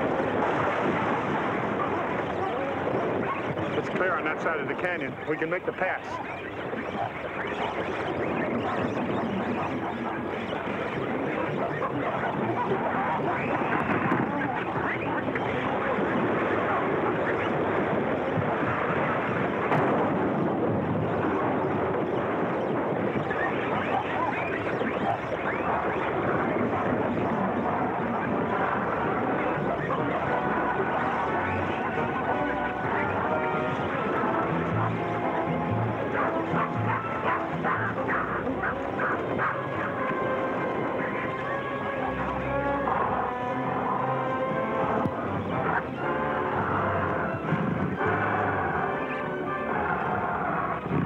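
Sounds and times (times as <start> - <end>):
monkeys chattering and screeching: 0.0 - 17.6, 21.3 - 50.8
faint music: 0.0 - 51.0.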